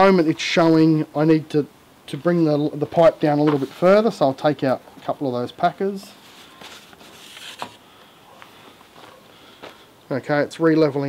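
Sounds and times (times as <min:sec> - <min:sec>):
rustling scrape: 0:06.0 - 0:09.2.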